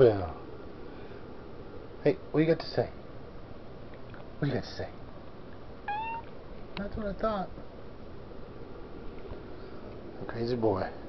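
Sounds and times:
cat meowing: 5.8 - 6.3.

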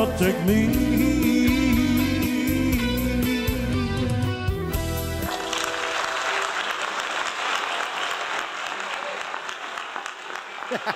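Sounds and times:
band chord on keyboard and guitar: 0.0 - 5.3
audience applause: 5.2 - 10.9.

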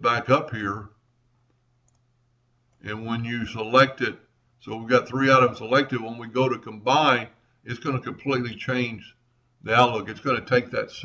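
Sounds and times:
man speaking: 0.0 - 0.9, 2.8 - 9.1, 9.7 - 11.0
low steady hum: 0.0 - 11.0
faint mouse clicks: 1.4 - 2.1.

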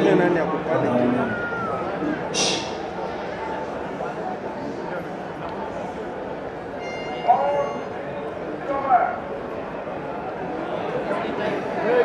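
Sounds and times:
stadium crowd noise: 0.0 - 12.0
shouts from crowd: 1.0 - 2.2.

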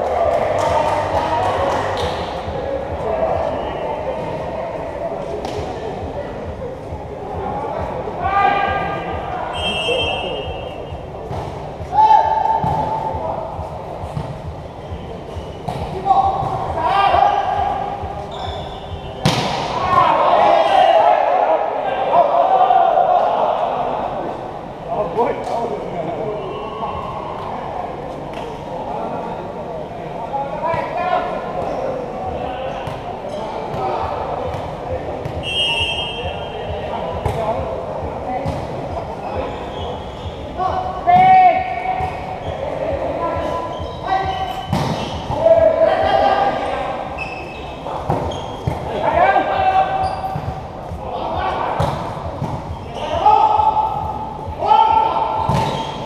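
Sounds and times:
players calling and shouting: 0.0 - 56.0
referee's whistle: 9.5 - 10.9, 35.4 - 36.6.

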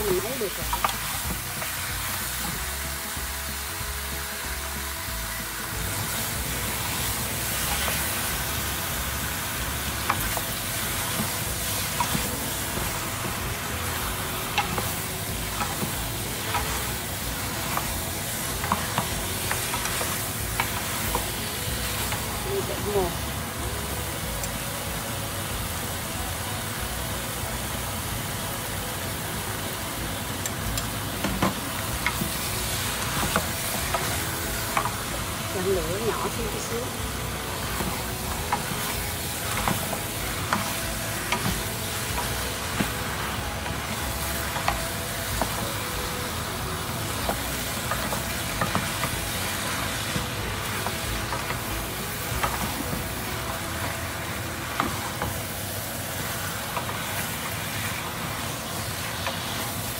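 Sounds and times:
meat sizzling in a pan: 0.0 - 59.9.

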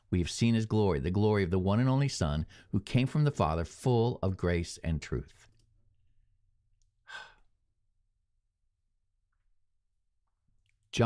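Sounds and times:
short breath: 7.0 - 7.6.

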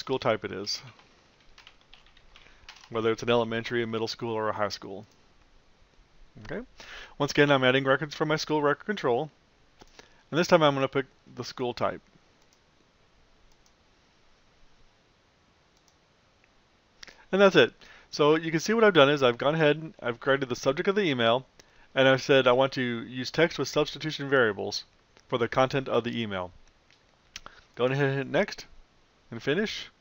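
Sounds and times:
keyboard typing: 0.8 - 3.0
faint computer mouse clicks: 13.5 - 13.8, 15.8 - 16.0.

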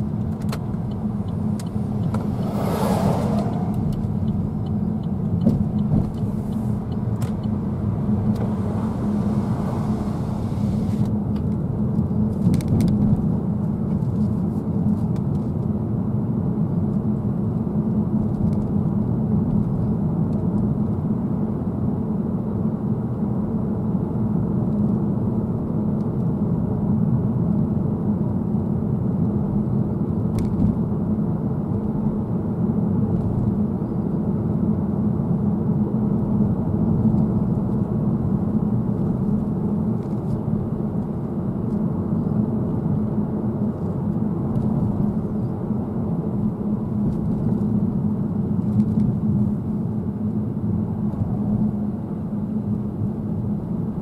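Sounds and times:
car cabin road and engine hum: 0.0 - 54.0.

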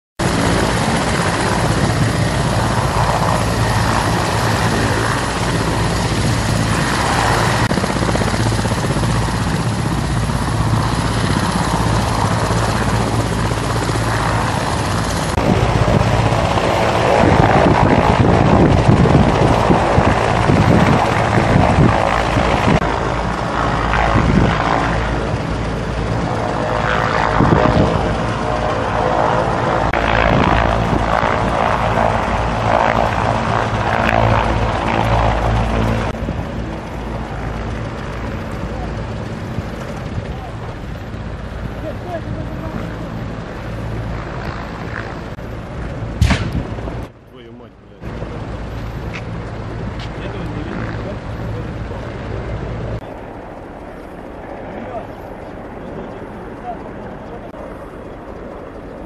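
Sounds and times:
footsteps: 50.0 - 50.2.

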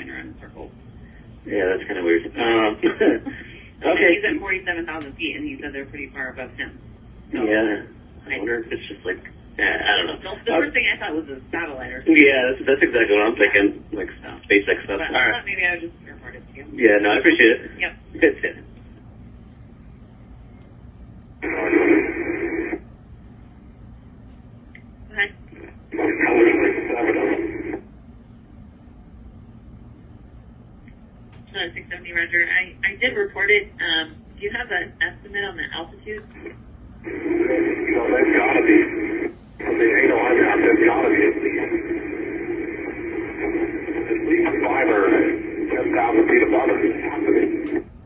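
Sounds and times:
garbled voice over noisy radio: 1.5 - 4.7, 5.6 - 11.0, 11.8 - 15.5, 25.2 - 27.8, 37.0 - 47.8.

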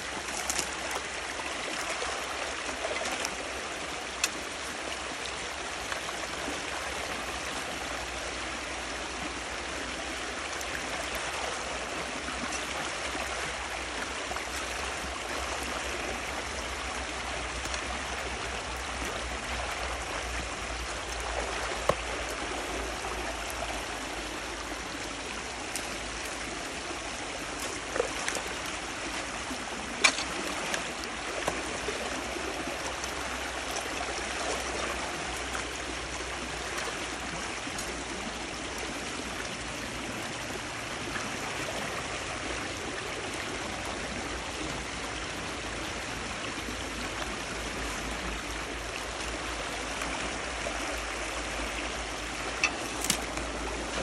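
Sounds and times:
water rushing: 0.0 - 54.0.

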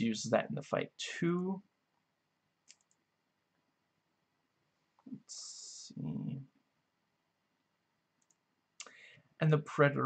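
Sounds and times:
faint clicks: 2.6 - 3.0, 8.2 - 9.0.

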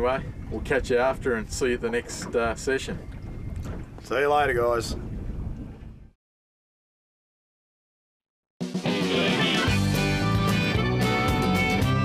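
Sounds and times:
wind rumbling on microphone: 0.0 - 6.2.

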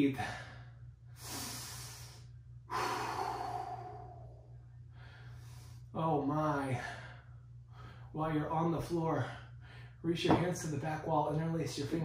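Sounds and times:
man breathing hard: 0.2 - 5.9, 6.7 - 8.2.

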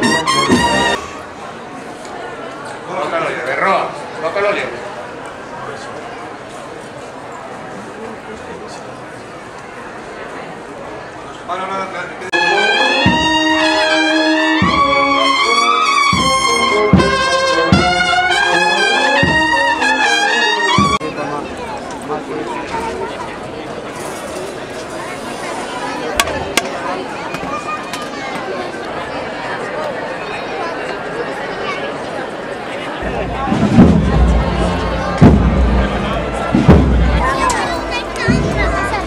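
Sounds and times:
brass band playing a march: 0.0 - 1.2, 12.3 - 21.0, 33.0 - 39.0
murmur of outdoor crowd: 0.0 - 39.0
bass drum beat: 33.0 - 39.0
loud low thud: 33.0 - 39.0.

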